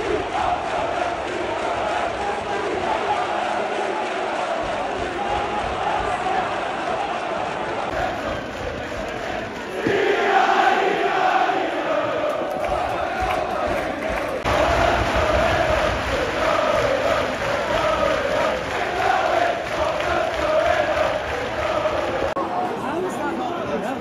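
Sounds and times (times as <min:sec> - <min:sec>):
crowd chanting in unison: 0:00.0 - 0:23.0.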